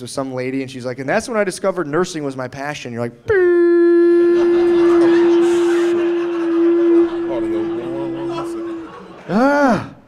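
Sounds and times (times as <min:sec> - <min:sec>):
man holding a nasal vocal note: 0:03.3 - 0:10.0.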